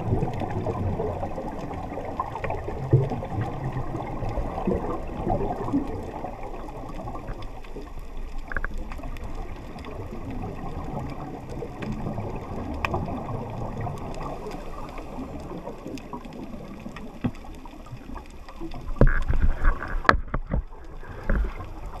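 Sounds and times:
muffled underwater rushing: 0.0 - 22.0.

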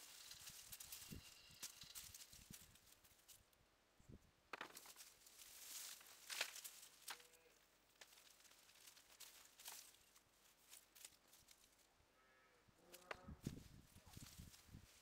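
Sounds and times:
roots crackling: 0.0 - 3.5, 4.5 - 11.9
dry soil rustling and crumbling: 0.0 - 3.6, 4.5 - 11.9, 12.8 - 15.0.

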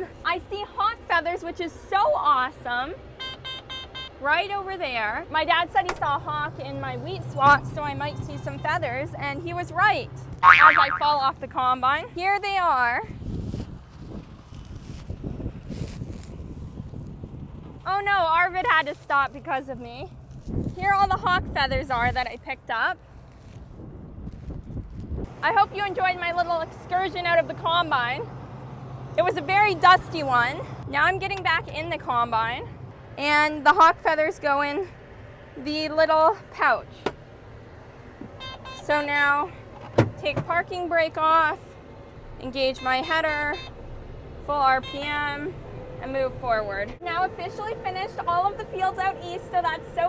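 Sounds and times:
dry straw rustling and crackling: 12.4 - 25.6
footsteps on straw: 13.2 - 17.1, 18.5 - 21.2, 21.8 - 25.1
combine harvester running: 25.3 - 36.1.

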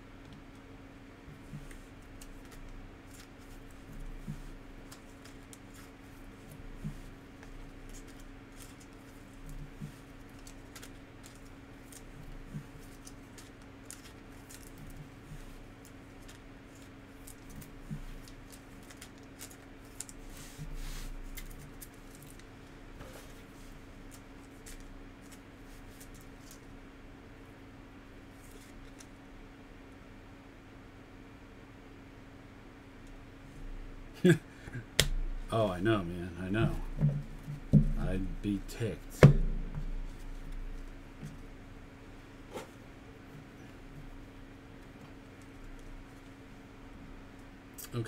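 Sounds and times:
steady low hum: 0.0 - 48.0
cards shuffled: 1.5 - 22.5, 28.4 - 29.1
foil wrapper crinkling: 15.8 - 20.4.

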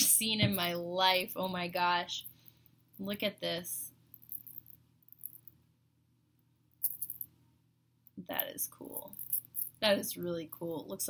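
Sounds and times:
chain bracelet clinking: 4.1 - 5.6, 6.8 - 7.3, 8.4 - 9.8.

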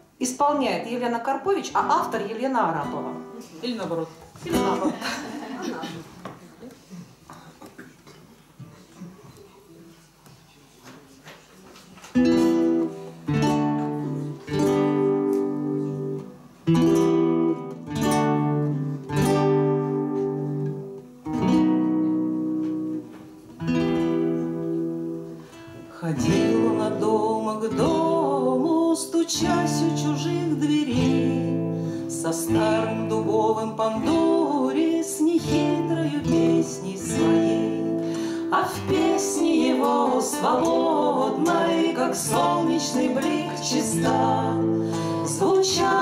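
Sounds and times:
acoustic guitars playing: 0.0 - 7.2, 12.0 - 46.0.

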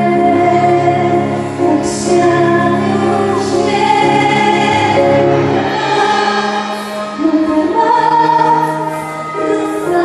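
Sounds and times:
orchestra strings: 0.0 - 10.0
woman singing into microphone: 0.0 - 10.0.

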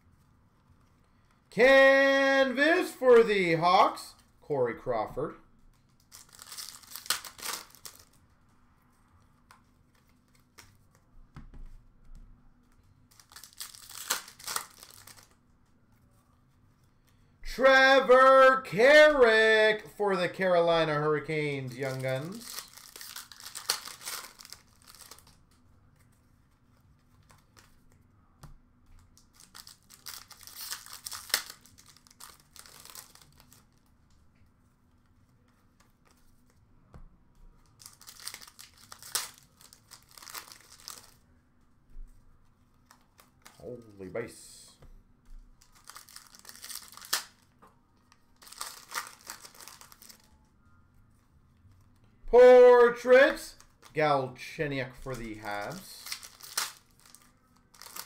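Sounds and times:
foil wrappers crinkling and tearing: 5.9 - 8.2, 13.1 - 15.4, 21.4 - 25.6, 29.2 - 33.9, 37.6 - 41.2, 45.6 - 47.5, 48.4 - 50.3, 55.0 - 58.0.

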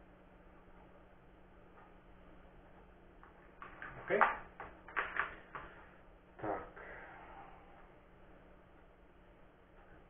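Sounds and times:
faint steady low hum: 0.0 - 10.0
small objects clicking and tapping: 3.2 - 5.8.

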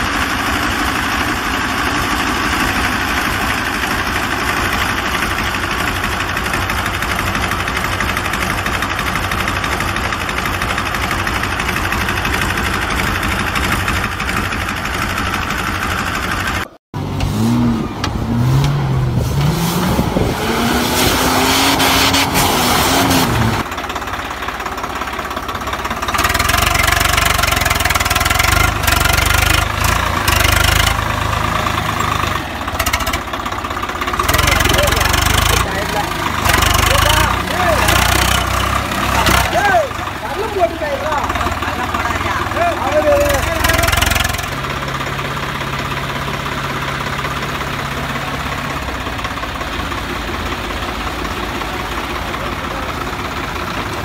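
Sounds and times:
engine running: 0.0 - 54.0.

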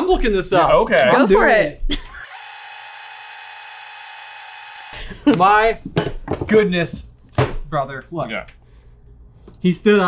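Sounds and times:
tape fast-forward whirring: 2.2 - 5.0.

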